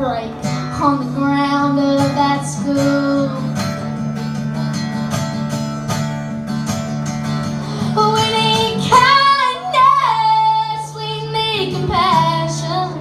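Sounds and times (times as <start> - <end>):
girl singing: 0.0 - 3.7, 7.8 - 13.0
strummed acoustic guitar: 0.0 - 13.0.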